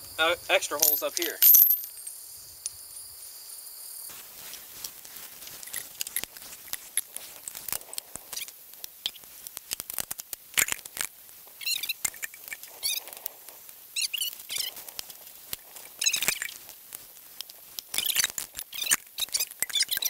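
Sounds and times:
chain and bolts clinking and rattling: 0.5 - 3.1
chain clanks: 0.7 - 2.2.

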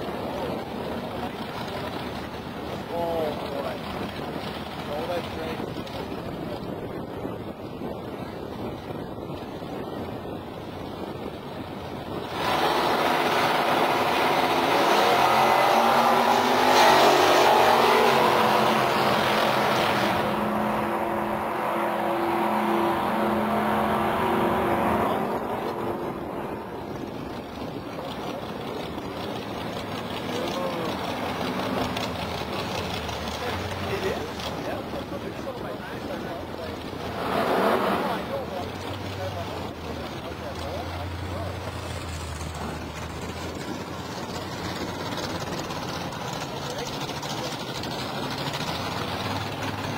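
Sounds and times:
drag cars accelerating: 10.8 - 49.9
engine revving: 12.1 - 49.9
engine idling: 38.6 - 49.9.

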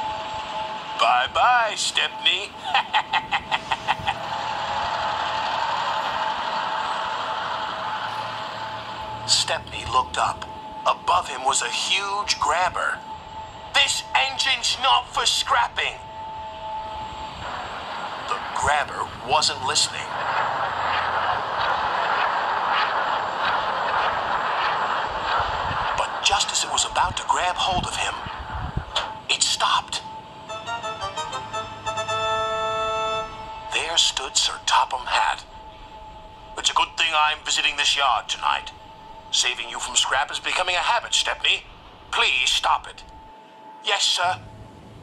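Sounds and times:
rushing mechanical noise: 0.0 - 45.0
faint repeating pulses: 3.7 - 45.0
steady hiss: 5.3 - 30.4.

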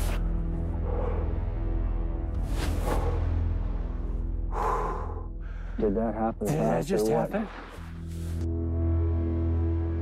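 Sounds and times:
soundtrack music low tones: 0.0 - 10.0
person breathing loudly: 4.5 - 5.8
man speaking: 5.8 - 7.6.

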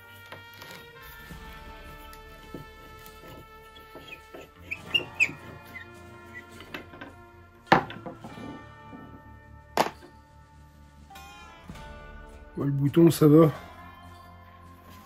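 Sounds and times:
background music: 0.0 - 15.0
screw squeaking: 3.5 - 7.3.

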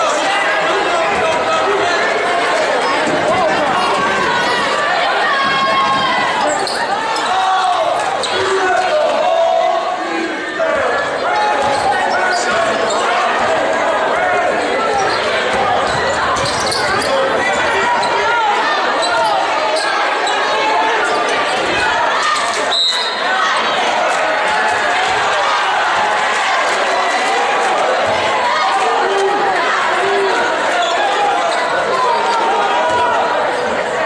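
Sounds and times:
chatter of spectators: 0.0 - 34.0.

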